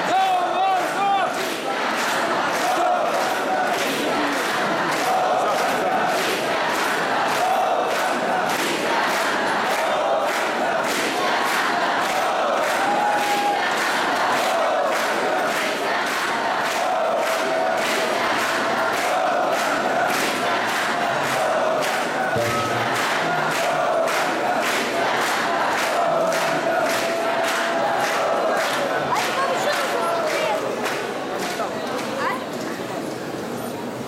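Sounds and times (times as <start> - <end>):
crowd chanting together: 0.0 - 32.3
steady percussive beat: 16.8 - 27.4.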